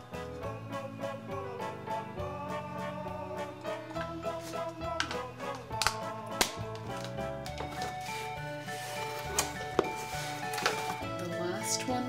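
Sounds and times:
light instrumental music: 0.0s - 12.0s
plastic cans clicking and tapping: 5.0s - 5.2s, 5.8s - 8.0s, 9.2s - 11.0s.

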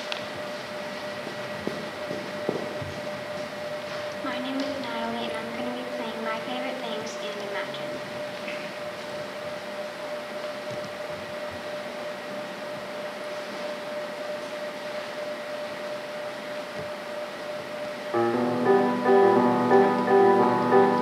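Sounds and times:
faint constant hum: 0.0s - 21.0s
keyboard playing piano notes: 18.1s - 21.0s.

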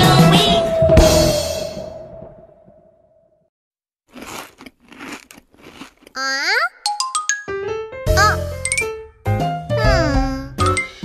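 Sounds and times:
crunchy cartoon chewing: 4.1s - 6.7s.

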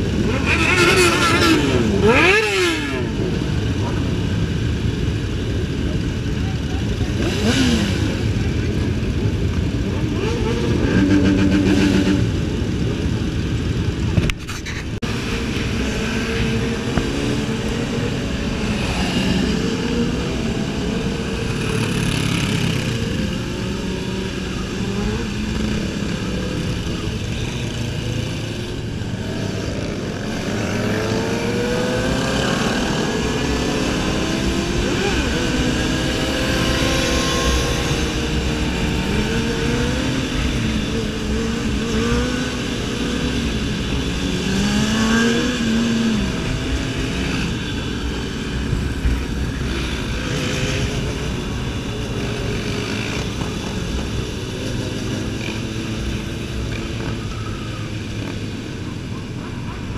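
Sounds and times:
motorcycles revving: 0.0s - 59.9s.

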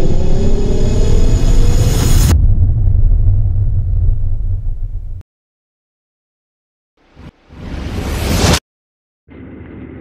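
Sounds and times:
deep bass rumble drone: 0.0s - 5.2s.

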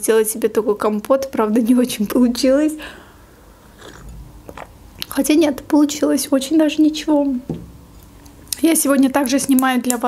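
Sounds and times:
sipping and swallowing drink: 3.6s - 5.1s.

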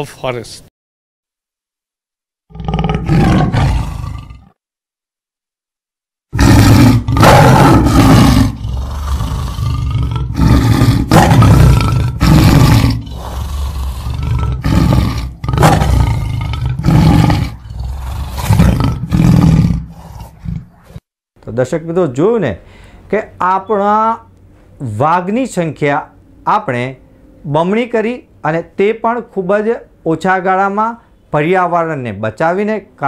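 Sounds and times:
tiger roaring and grunting: 2.5s - 4.6s, 6.3s - 21.0s.

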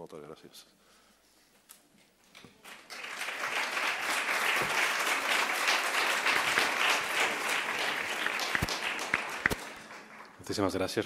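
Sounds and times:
audience applauding: 2.6s - 10.8s.

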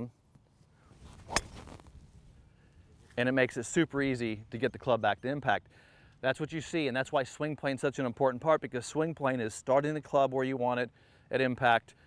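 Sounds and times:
golf club striking ball: 1.3s - 1.8s.

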